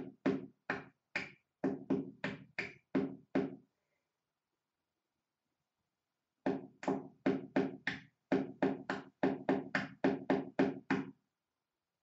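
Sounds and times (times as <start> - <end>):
knocking on hard surface: 1.6 - 3.6, 6.5 - 11.1.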